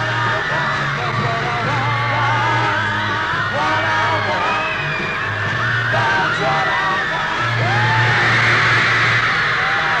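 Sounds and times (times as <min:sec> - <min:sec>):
crowd of fans screaming: 0:00.0 - 0:10.0
pop group playing live: 0:00.0 - 0:10.0.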